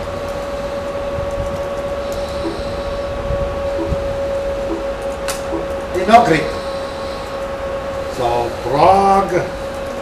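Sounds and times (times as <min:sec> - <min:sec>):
constant mid-pitched tone: 0:00.0 - 0:10.0
room hum: 0:00.0 - 0:10.0.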